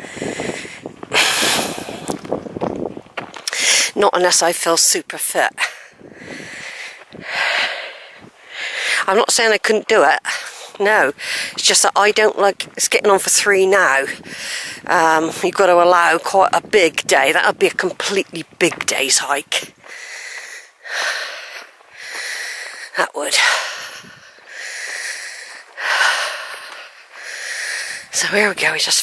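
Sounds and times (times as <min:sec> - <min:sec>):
person breathing heavily: 0:00.0 - 0:02.2, 0:03.4 - 0:04.0, 0:05.6 - 0:09.1, 0:10.3 - 0:11.6, 0:14.2 - 0:14.9, 0:19.7 - 0:28.2.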